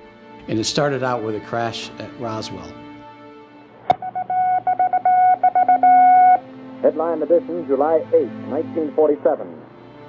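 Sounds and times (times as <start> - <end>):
music: 0.0 - 10.0
low held tone: 3.9 - 6.4
morse code beeps: 3.9 - 6.4.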